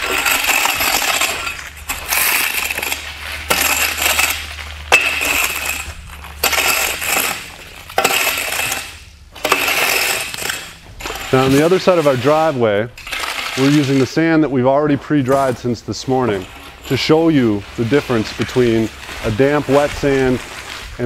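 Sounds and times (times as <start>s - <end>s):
rake scraping sand on pavers: 0.0s - 14.4s, 15.0s - 21.0s.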